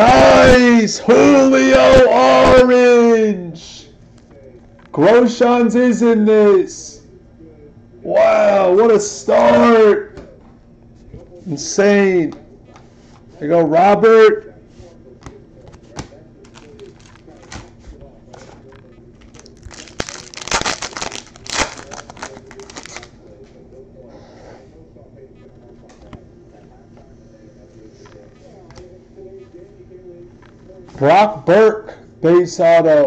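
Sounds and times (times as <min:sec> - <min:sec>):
foil wrapper crinkling and tearing: 0:16.4 - 0:17.8, 0:18.4 - 0:23.2.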